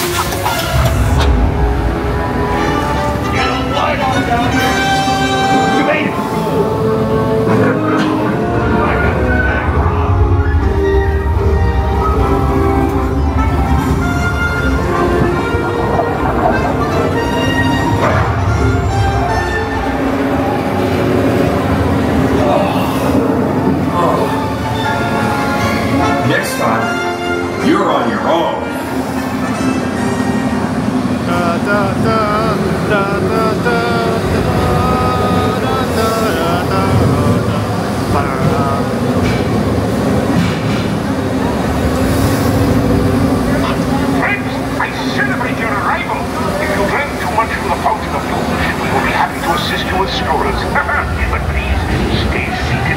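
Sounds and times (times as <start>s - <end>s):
indistinct voices: 0.0s - 52.9s
orchestral music: 0.0s - 52.9s
ride vehicle rumbling on track: 0.0s - 52.9s.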